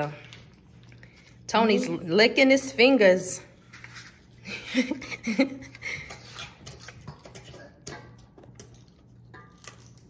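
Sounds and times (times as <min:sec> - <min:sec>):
utensil scraping metal bowl: 0:06.0 - 0:08.3.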